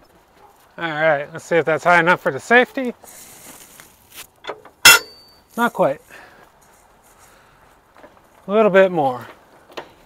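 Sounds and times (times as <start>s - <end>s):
metallic clank with ring: 4.8s - 5.4s.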